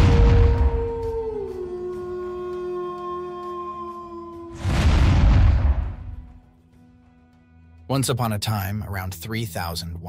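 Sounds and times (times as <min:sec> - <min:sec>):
wolf howl: 0:00.0 - 0:05.4
loud rushing hit: 0:04.6 - 0:06.3.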